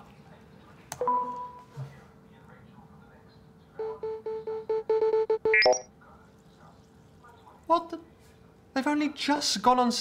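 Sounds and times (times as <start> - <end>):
short electronic beeps: 4.0 - 5.9.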